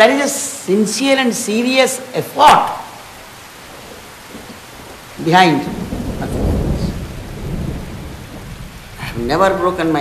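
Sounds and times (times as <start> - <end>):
steady rushing noise: 2.9 - 10.0
low rumble: 5.7 - 10.0.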